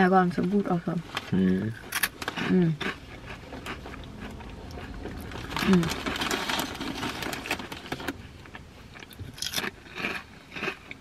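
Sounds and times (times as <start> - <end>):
potato chips crunching: 1.6 - 11.0
chip bag crinkling: 1.9 - 10.7.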